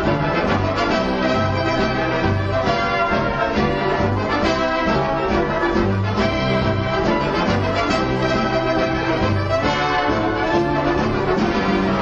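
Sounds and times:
orchestral music with brass: 0:00.0 - 0:12.0.

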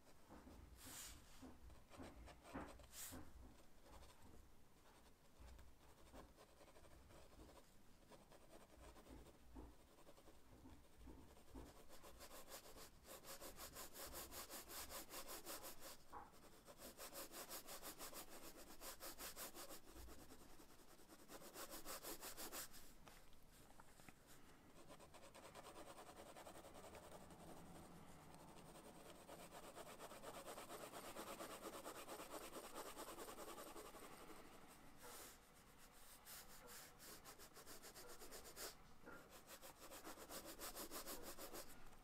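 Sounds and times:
pencil scratching on paper: 0:00.0 - 0:22.9, 0:24.8 - 0:41.9.

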